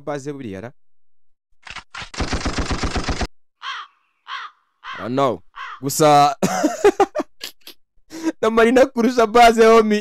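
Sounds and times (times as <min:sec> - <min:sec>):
man laughing loudly: 0:06.4 - 0:08.4.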